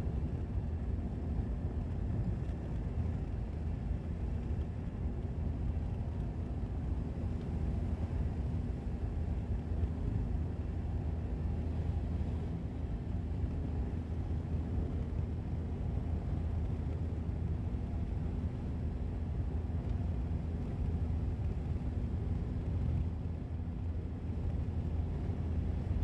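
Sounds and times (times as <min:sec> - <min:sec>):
car engine and tyres rumbling: 0:00.0 - 0:26.0.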